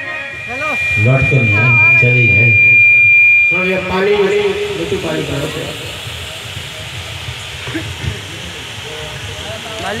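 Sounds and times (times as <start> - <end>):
fan hiss and rumble: 0.0 - 10.0.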